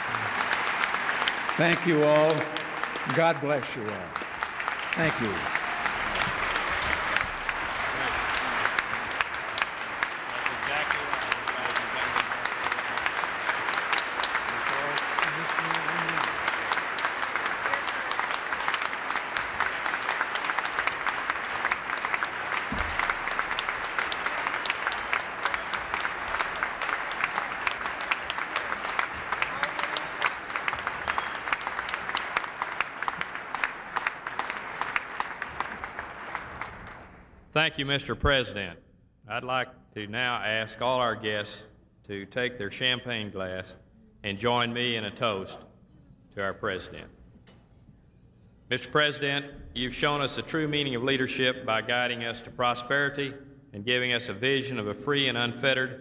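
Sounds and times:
audience applauding: 0:00.0 - 0:37.4.

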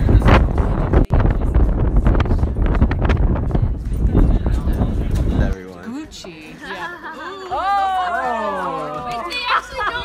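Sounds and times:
wind buffeting microphone: 0:00.0 - 0:05.6.

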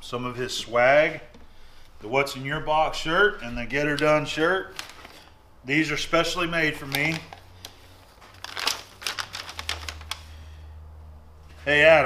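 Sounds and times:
paper crackling as unfolded: 0:03.8 - 0:05.4, 0:06.6 - 0:10.4.

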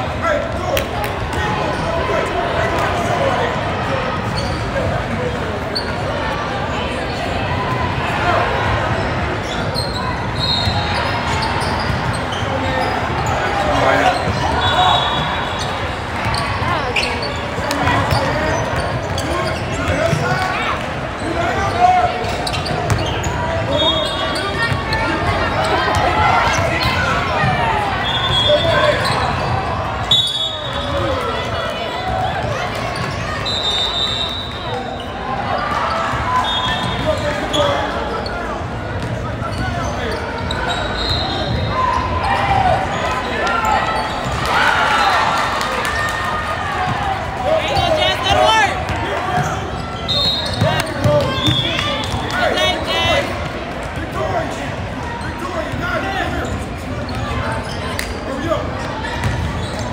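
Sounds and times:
people talking and shouting: 0:00.0 - 0:59.9
sneaker squeaks: 0:04.2 - 0:06.3, 0:09.4 - 0:45.2, 0:47.6 - 0:59.9.

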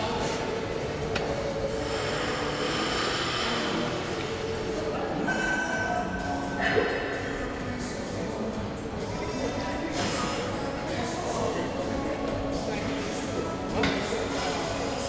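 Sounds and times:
busy gym background noise: 0:00.0 - 0:15.0
faint voices: 0:00.0 - 0:15.0.

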